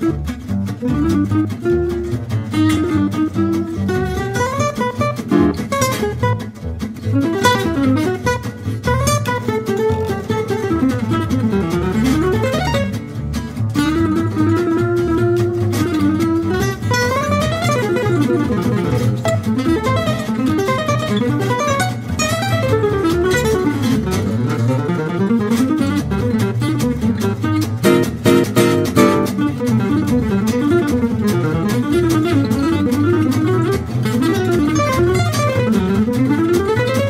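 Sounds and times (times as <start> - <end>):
lead acoustic guitar solo: 0.0 - 37.0
rhythm guitar chords: 0.0 - 37.0
upright double bass: 0.0 - 37.0.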